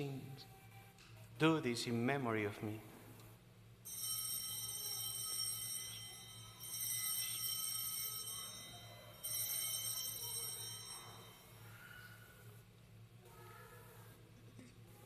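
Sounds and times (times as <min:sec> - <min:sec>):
altar bells ringing: 0:03.8 - 0:12.4.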